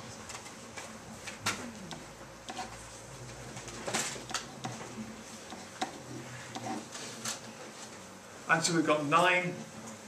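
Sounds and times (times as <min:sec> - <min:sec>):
marker scratching on whiteboard: 0:02.5 - 0:02.8, 0:04.3 - 0:07.0
sharp marker taps: 0:05.5 - 0:06.8.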